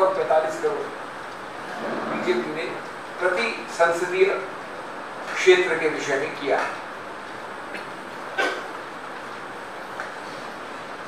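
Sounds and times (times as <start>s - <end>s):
steady room hiss: 0.0s - 11.0s.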